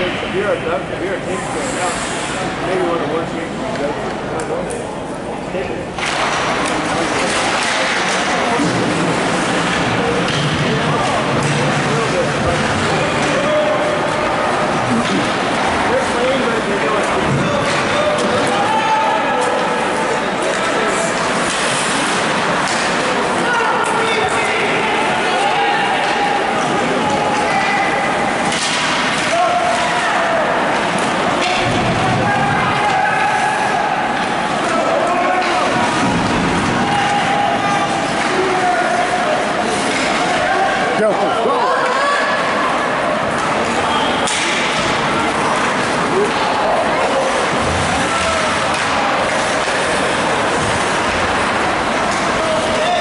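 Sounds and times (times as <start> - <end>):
spectators chattering and shouting: 0.0 - 53.0
ice hockey rink din: 5.9 - 53.0.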